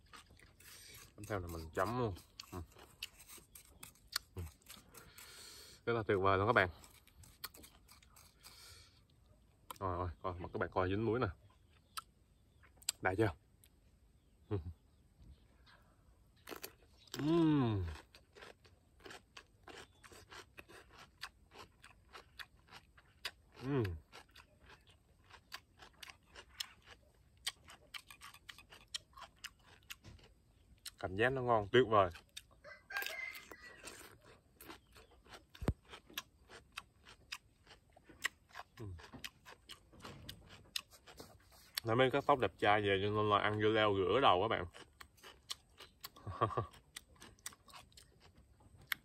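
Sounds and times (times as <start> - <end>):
person chewing cucumber: 0.0 - 10.4, 11.3 - 49.0
rooster crowing: 32.6 - 34.1.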